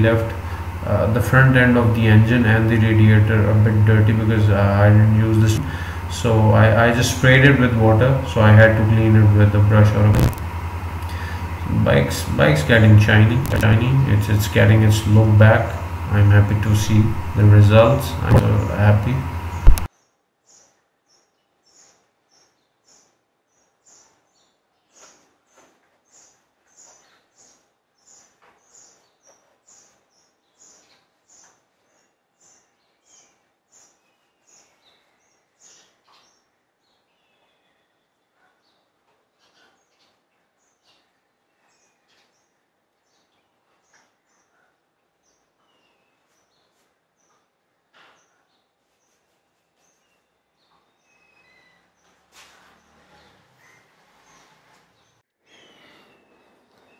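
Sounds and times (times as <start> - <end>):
small birds chirping: 0.0 - 56.9.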